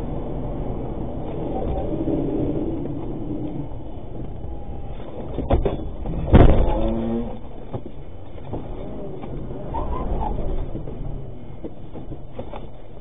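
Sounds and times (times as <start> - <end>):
vehicle engine and road noise: 0.0 - 13.0.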